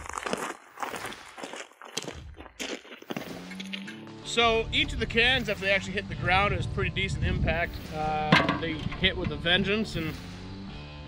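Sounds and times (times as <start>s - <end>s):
footsteps crunching on gravel: 0.0s - 4.0s.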